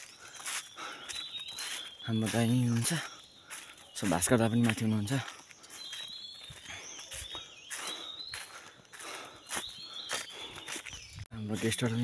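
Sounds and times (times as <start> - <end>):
footsteps on dry leaves: 0.0 - 12.0.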